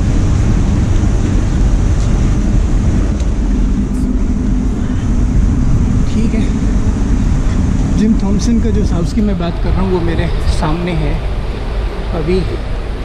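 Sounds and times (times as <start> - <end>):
traffic noise: 0.0 - 13.0
wind buffeting microphone: 0.0 - 13.0.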